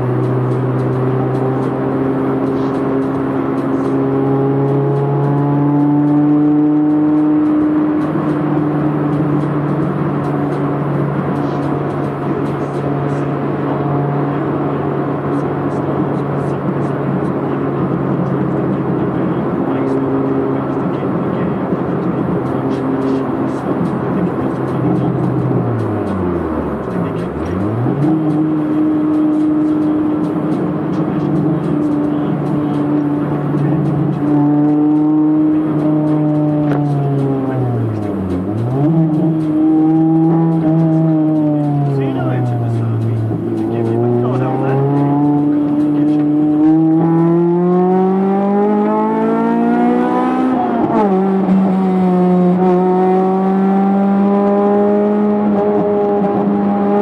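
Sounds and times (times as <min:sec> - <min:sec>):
car engine revving under load: 0:00.0 - 0:57.0.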